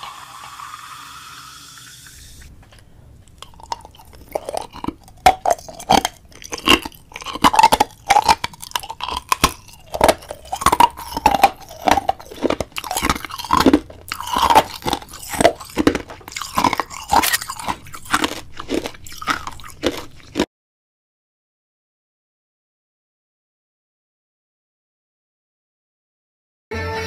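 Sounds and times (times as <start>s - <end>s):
crunchy chewing and biting: 3.2s - 20.5s.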